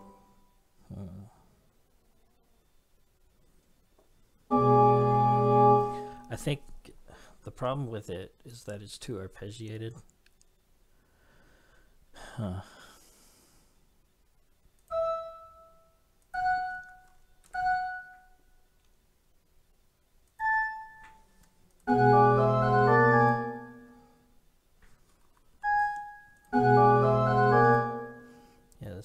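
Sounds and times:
pipe organ single notes: 0.0s - 0.6s, 4.5s - 6.5s, 21.9s - 24.2s, 25.6s - 28.6s
organ multi-voice passage: 4.5s - 6.6s, 25.7s - 28.5s.

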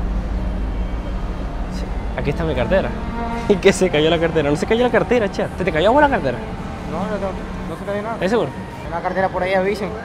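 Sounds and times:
low rumble: 0.0s - 8.6s.

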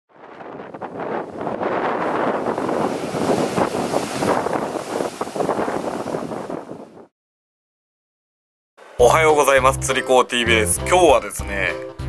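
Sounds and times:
wind buffeting microphone: 0.1s - 7.1s
sea surf breaking on rocks: 0.2s - 7.1s.

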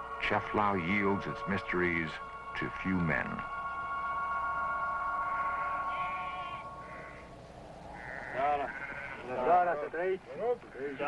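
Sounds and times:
sheep bleating: 5.2s - 11.0s.

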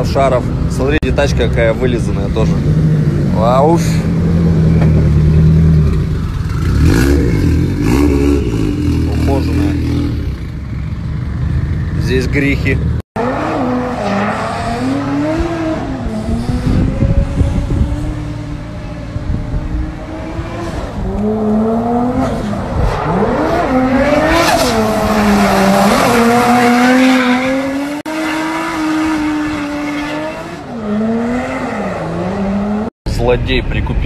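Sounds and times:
car engine revving: 2.0s - 11.9s, 12.6s - 32.9s.

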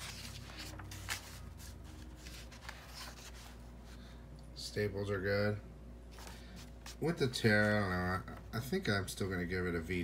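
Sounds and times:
comic book pages flipping: 0.0s - 4.0s.

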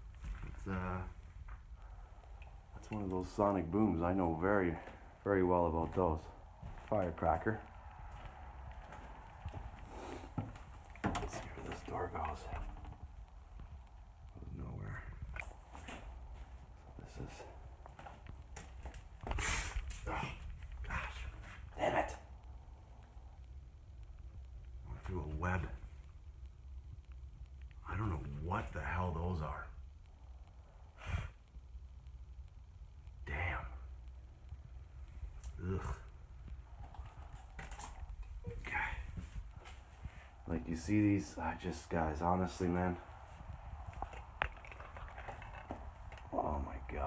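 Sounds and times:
footsteps: 0.0s - 23.4s, 35.0s - 47.0s
footsteps and scuffs: 5.8s - 12.0s.

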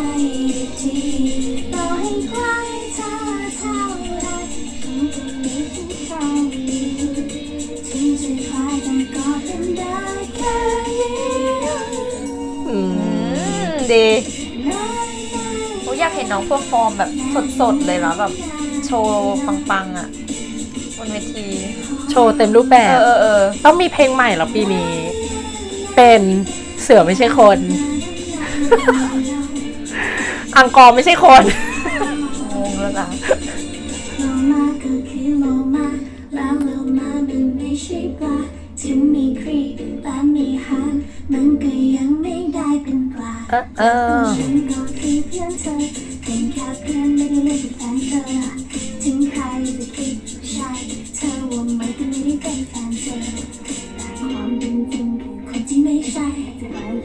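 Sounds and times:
light musical accompaniment: 0.0s - 57.0s
woman singing: 0.0s - 57.0s.

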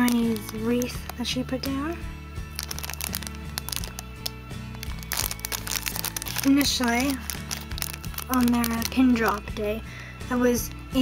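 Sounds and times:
plastic sleeve crinkling: 0.0s - 9.5s
background music: 0.0s - 11.0s.

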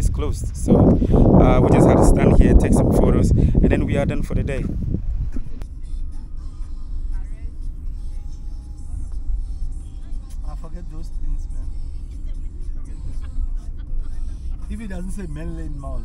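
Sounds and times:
engine and tyre rumble: 0.0s - 16.0s
music: 5.6s - 16.0s.

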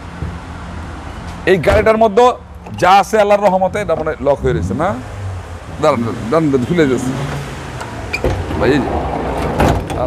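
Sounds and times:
person speaking: 1.4s - 5.1s.

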